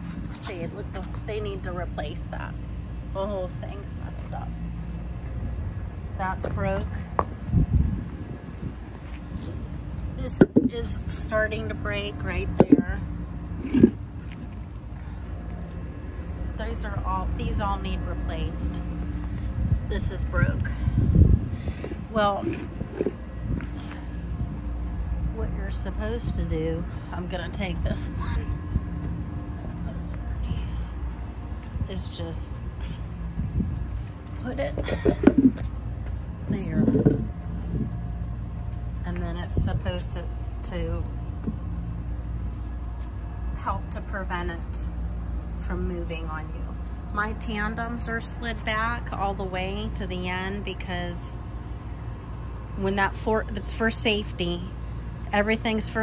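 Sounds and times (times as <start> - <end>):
low engine hum: 0.0 - 56.0.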